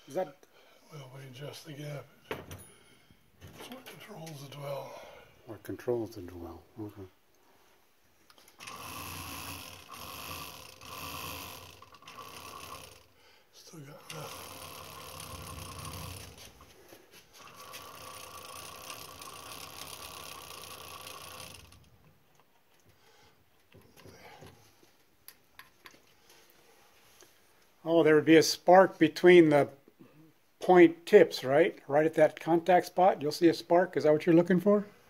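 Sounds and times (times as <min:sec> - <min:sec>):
distributor tester whine and whirr: 0:08.5 - 0:13.1, 0:14.1 - 0:16.6, 0:17.4 - 0:21.9.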